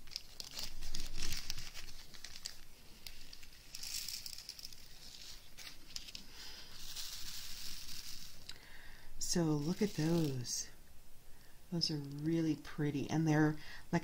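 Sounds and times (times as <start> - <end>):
plastic bag crinkling: 0.0 - 10.8, 11.7 - 12.8
small beads rattling into tray: 0.2 - 8.6, 9.6 - 10.7.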